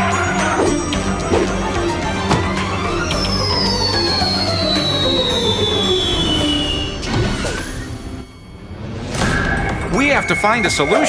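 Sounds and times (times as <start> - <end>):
background music: 0.0 - 11.0
cartoon falling whistle: 2.5 - 11.0.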